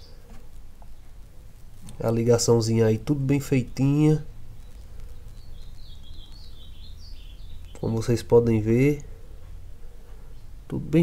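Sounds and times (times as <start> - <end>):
faint high-pitched chirping: 0.0 - 11.0
low background rumble: 0.0 - 11.0.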